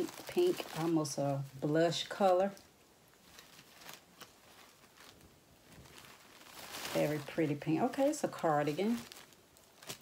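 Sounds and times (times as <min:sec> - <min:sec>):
cardigan rustling: 0:00.0 - 0:10.0.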